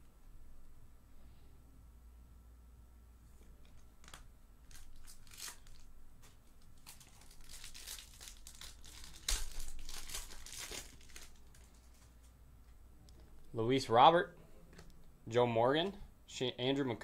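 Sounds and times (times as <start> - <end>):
foil wrapper tearing and crinkling: 4.0 - 5.9, 6.6 - 12.1.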